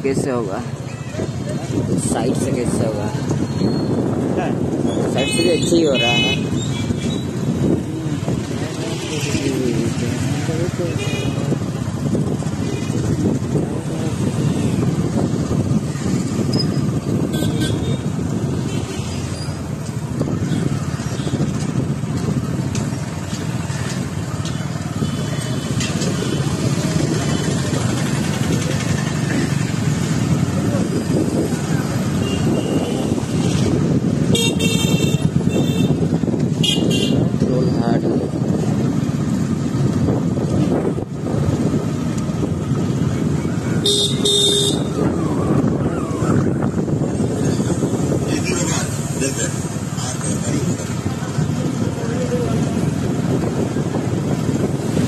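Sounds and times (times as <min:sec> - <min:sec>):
street traffic noise: 0:00.0 - 0:55.0
vehicle horns beeping: 0:05.2 - 0:06.7, 0:34.3 - 0:36.0, 0:36.6 - 0:37.2, 0:43.8 - 0:45.1
motorbike engine: 0:06.1 - 0:55.0.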